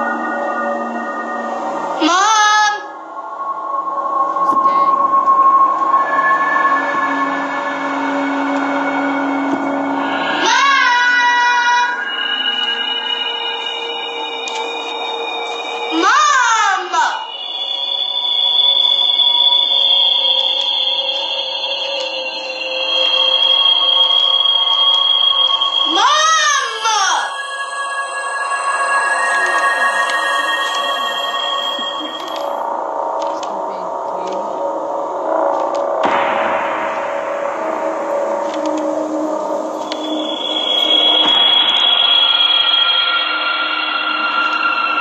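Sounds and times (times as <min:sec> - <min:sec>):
sustained eerie tones: 0:00.0 - 0:45.0
swooping tone: 0:00.0 - 0:45.0
loud wailing cry: 0:10.2 - 0:12.2.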